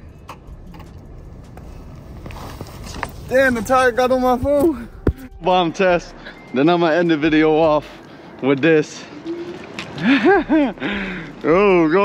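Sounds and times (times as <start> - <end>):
man laughing: 10.0 - 11.3.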